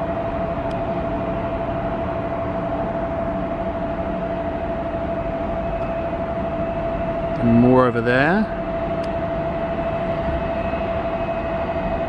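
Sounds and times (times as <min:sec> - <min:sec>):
constant jet whine: 0:00.0 - 0:12.0
distant jet airliners rumbling: 0:00.0 - 0:12.0.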